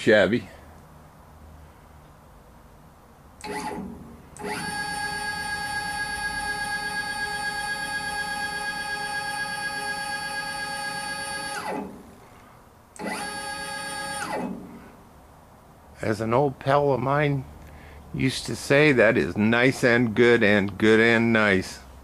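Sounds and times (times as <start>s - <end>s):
stepper motors whining: 3.4s - 12.2s, 13.0s - 14.8s.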